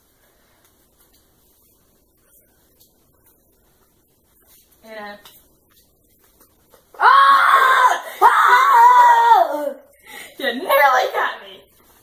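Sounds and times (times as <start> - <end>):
girl shrieking: 7.0 - 9.8.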